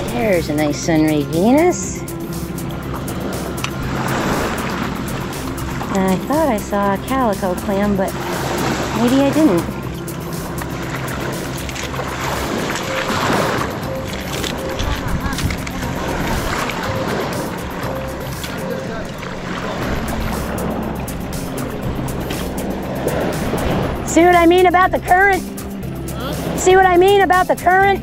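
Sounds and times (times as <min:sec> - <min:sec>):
music with held notes: 0:00.0 - 0:28.0
water current rushing and sloshing: 0:00.0 - 0:28.0.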